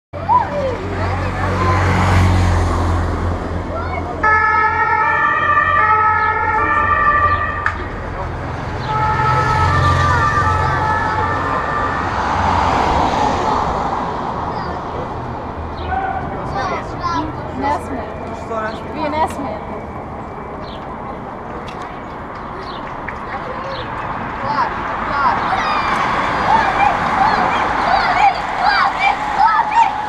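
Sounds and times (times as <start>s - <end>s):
street noise: 0.1s - 30.0s
vehicle siren: 4.2s - 13.2s.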